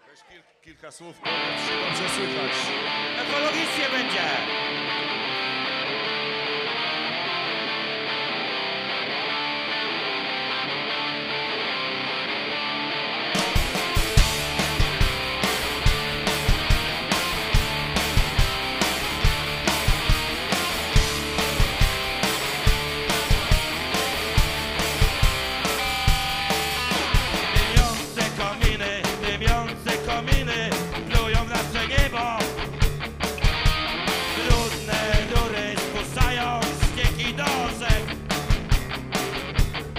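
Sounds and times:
electric guitar playing alone: 1.2 - 39.9
live punk rock band: 1.3 - 39.9.

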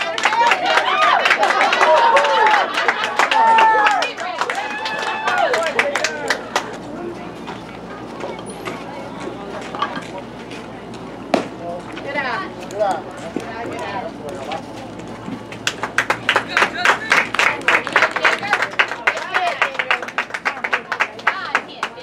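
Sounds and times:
crowd clapping: 0.0 - 7.0, 15.5 - 22.0
spectators talking and calling out: 0.0 - 22.0.

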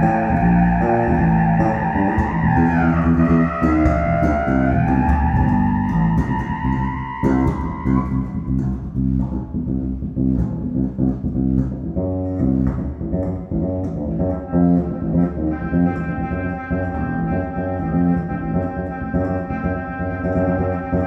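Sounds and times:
bass clarinet sliding notes: 0.0 - 21.0
plucked electric bass notes: 0.0 - 21.0.

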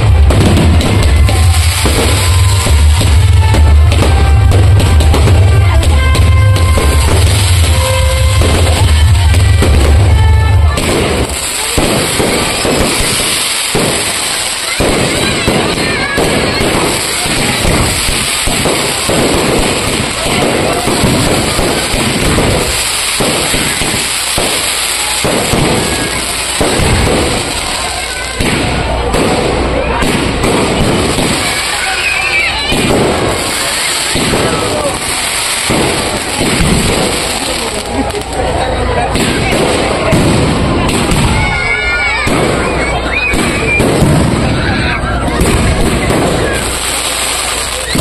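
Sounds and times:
fireworks bangs: 0.0 - 48.0.

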